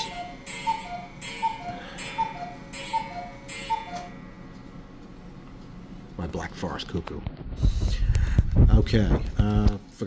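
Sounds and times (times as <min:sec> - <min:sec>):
cuckoo clock calling: 0:00.0 - 0:04.2.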